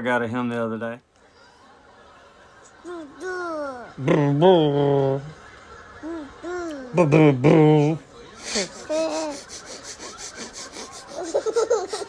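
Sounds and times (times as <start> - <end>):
toddler laughing: 2.8 - 4.0, 6.0 - 7.2, 8.4 - 12.0.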